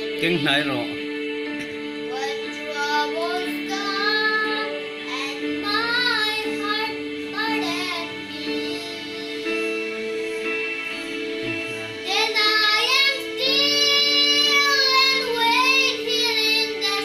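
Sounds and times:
held backing chords: 0.0 - 17.0
boy singing: 2.1 - 9.4, 12.0 - 17.0.

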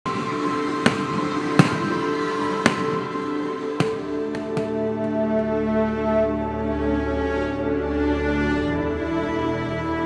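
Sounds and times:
firework bangs: 0.2 - 5.6.

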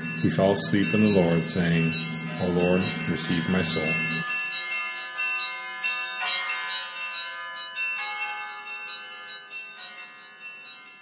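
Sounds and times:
ringing bell tones: 0.0 - 11.0.

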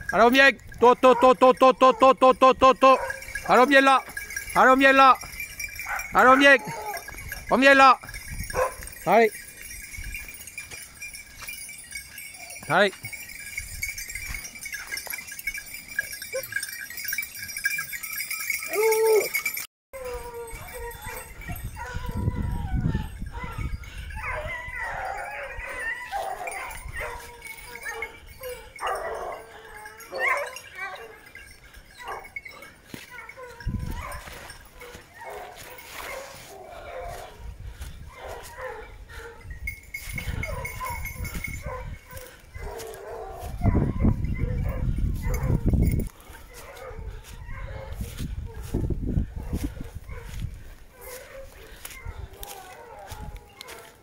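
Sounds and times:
hounds baying: 0.0 - 54.0.

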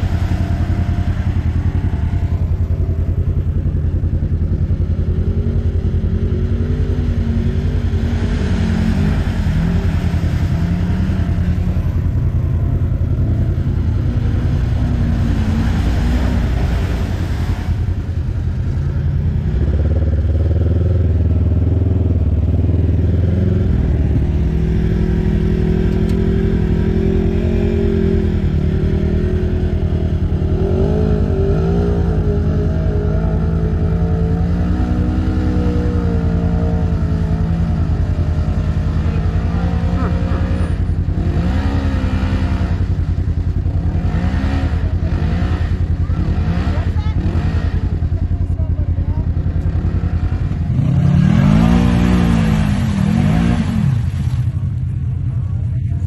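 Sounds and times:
utility vehicle engines revving: 0.0 - 56.0.

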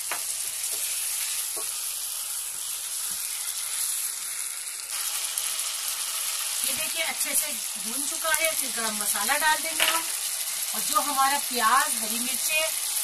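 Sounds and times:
chicken sizzling in hot oil: 0.0 - 13.0.

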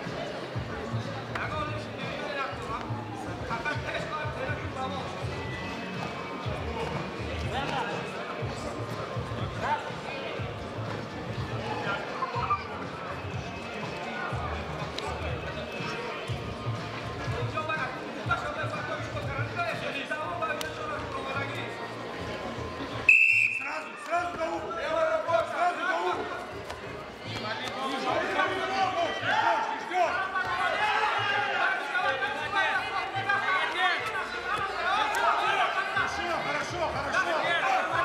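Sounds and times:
background music: 0.0 - 38.0
referee's whistle blast: 23.1 - 23.9.

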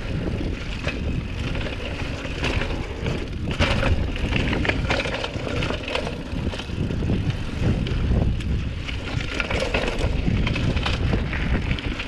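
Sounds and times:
bike rattles and knocks: 0.0 - 12.0
mountain bike low rumble: 0.0 - 12.0.

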